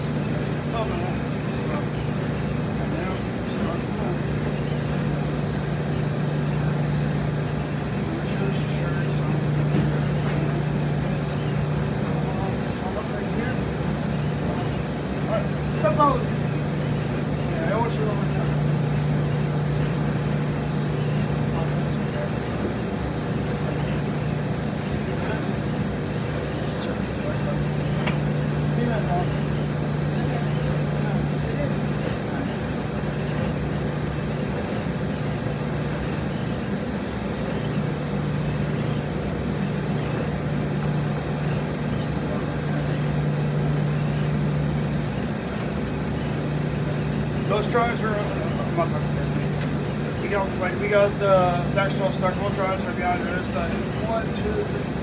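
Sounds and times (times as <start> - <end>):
washers and dryers humming: 0.0 - 55.0.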